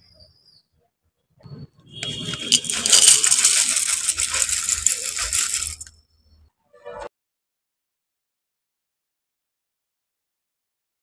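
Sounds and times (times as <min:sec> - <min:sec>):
cereal flakes pouring into bowl: 0:02.0 - 0:05.9.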